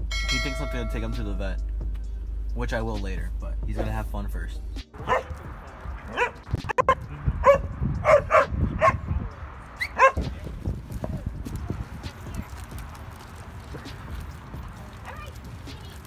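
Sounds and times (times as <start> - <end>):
low rumbling background: 0.0 - 5.8
dogs barking: 5.0 - 9.1, 9.8 - 10.4.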